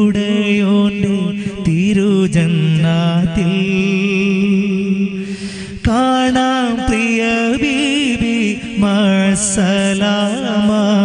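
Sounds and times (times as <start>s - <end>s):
man singing into microphone: 0.0s - 11.0s.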